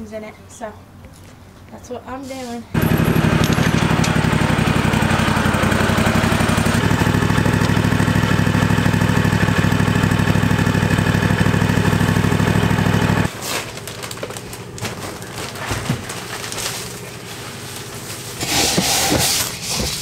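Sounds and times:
riding mower engine running: 2.8 - 13.3.

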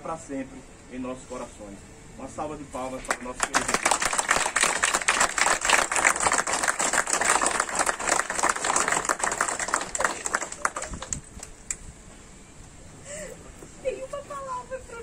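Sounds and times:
crowd applauding: 3.1 - 11.6.

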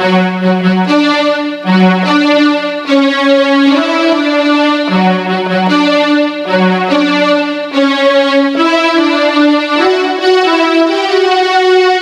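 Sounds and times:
electronic keyboard slow melody: 0.0 - 12.0.

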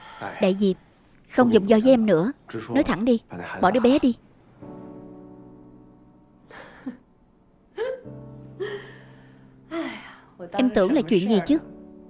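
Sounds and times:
soft background music: 0.0 - 12.0
woman laughing breathily: 6.5 - 7.0, 7.8 - 9.2.

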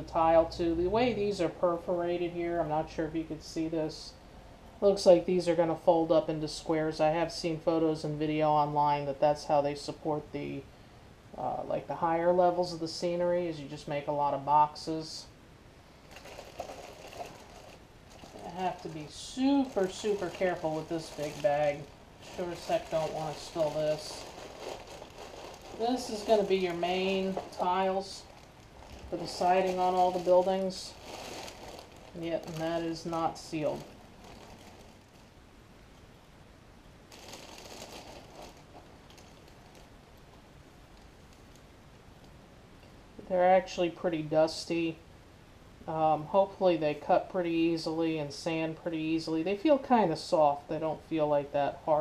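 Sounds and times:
plastic bag crinkling: 16.0 - 35.4, 37.1 - 41.6.

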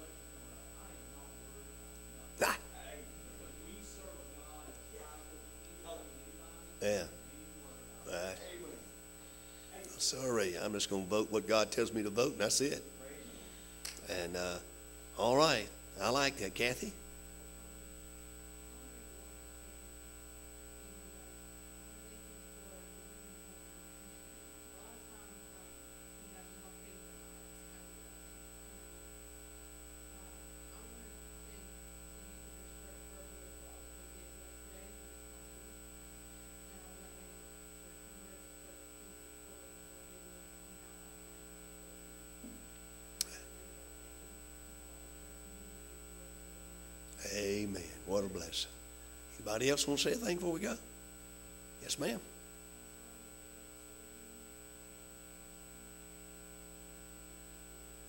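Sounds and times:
faint voice speaking: 0.0 - 8.9
electrical mains hum: 0.0 - 58.0.

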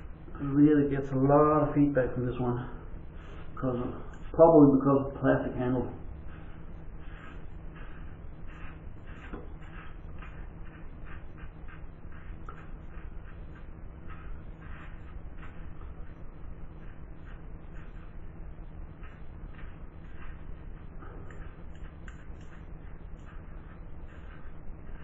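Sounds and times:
razor scraping stubble: 0.2 - 25.0.

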